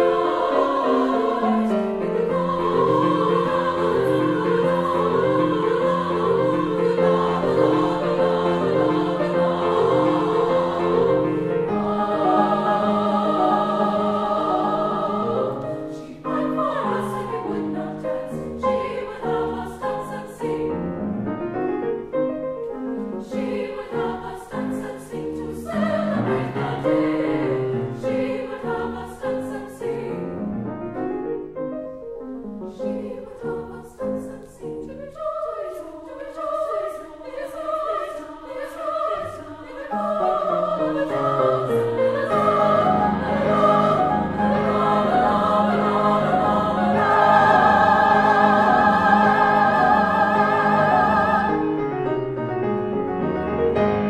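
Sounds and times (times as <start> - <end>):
women's choir singing: 0.0 - 21.0, 23.2 - 30.4, 32.7 - 51.8
piano accompaniment: 0.0 - 35.6, 38.8 - 54.0.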